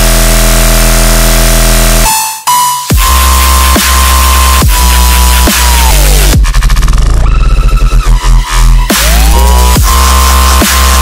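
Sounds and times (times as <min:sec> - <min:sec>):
low bass synth note: 0:00.0 - 0:02.1.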